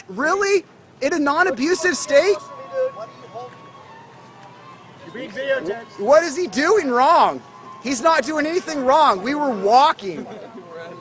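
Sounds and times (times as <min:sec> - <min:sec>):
street background noise: 0:00.0 - 0:11.0.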